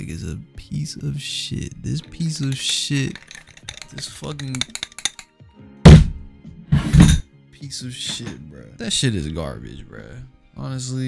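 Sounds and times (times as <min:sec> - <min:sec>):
microphone thumps: 0:05.9 - 0:07.2.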